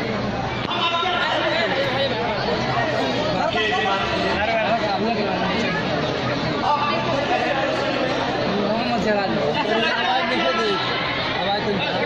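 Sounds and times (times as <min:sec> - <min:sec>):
crowd chatter: 0:00.0 - 0:12.0
man speaking over loudspeakers: 0:00.7 - 0:02.5, 0:03.2 - 0:05.6, 0:06.6 - 0:12.0.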